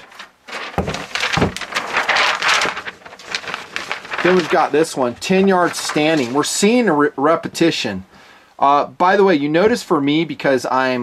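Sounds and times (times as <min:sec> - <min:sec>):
paper target rustling: 0:00.0 - 0:06.9.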